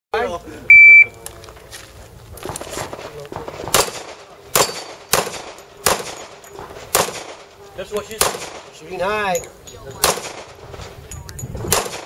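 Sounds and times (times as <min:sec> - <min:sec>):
shot timer beep: 0:00.7 - 0:01.1
handgun shots: 0:03.7 - 0:07.5, 0:08.2 - 0:08.7, 0:10.0 - 0:10.6, 0:11.7 - 0:12.0.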